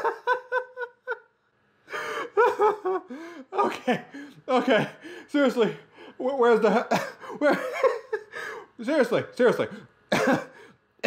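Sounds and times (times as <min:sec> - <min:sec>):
person laughing breathlessly: 0:00.0 - 0:01.2, 0:01.9 - 0:08.8.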